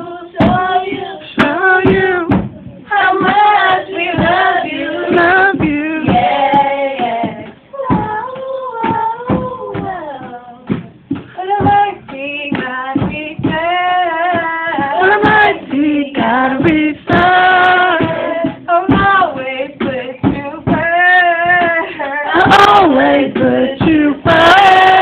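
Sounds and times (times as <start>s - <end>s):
girl singing into microphone: 0.0s - 25.0s.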